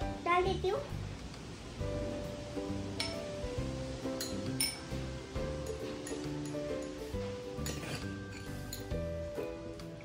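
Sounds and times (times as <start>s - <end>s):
background music: 0.0s - 10.0s
metal spoon clinking glass bowl: 3.0s - 3.2s, 4.1s - 9.0s.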